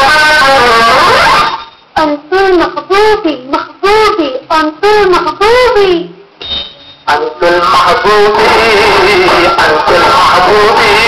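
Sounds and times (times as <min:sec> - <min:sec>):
woman singing unaccompanied: 0:02.0 - 0:06.1.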